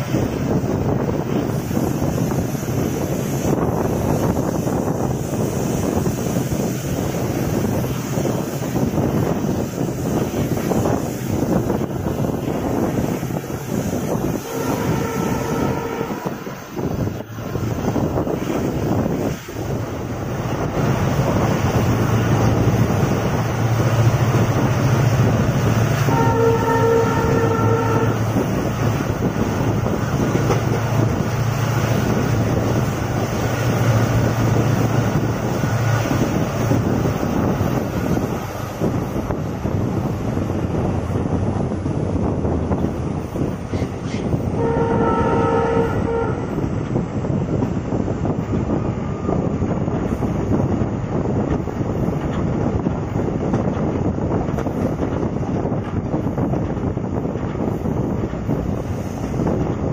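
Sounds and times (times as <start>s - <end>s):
train wheels rumbling on track: 0.0s - 59.9s
locomotive horn: 14.3s - 16.6s, 26.0s - 28.6s, 44.5s - 46.7s.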